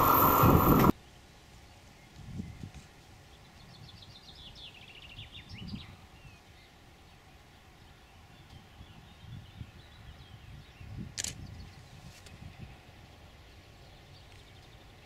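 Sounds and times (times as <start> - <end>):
low irregular rumble: 0.0 - 0.9
sharp click: 11.2 - 11.4.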